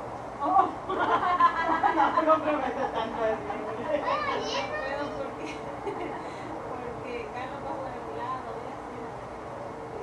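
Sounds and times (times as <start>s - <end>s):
children's voices at play: 3.8s - 5.8s
child calling out: 4.0s - 5.2s.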